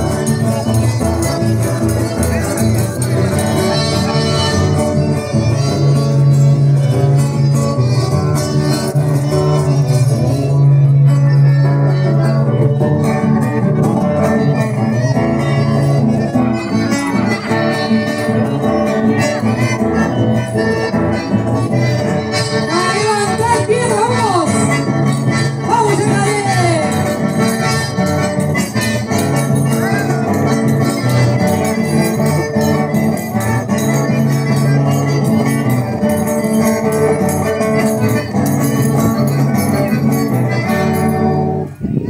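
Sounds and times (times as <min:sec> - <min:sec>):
accordion: 0:00.0 - 0:42.0
acoustic guitars: 0:00.0 - 0:42.0.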